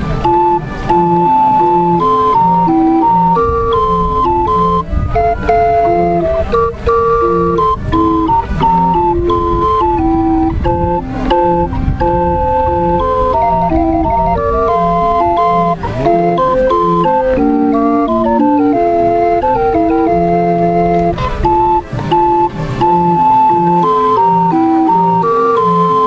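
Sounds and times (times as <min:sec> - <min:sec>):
barrel organ playing a tune: 0:00.0 - 0:26.0.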